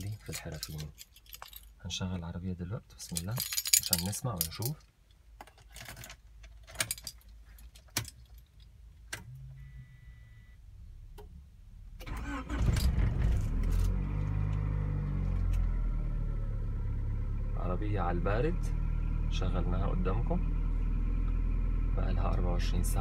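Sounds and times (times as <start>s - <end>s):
keys jangling in ignition: 0.0s - 1.8s, 3.0s - 4.9s, 5.5s - 8.7s
car engine idling: 14.2s - 23.0s.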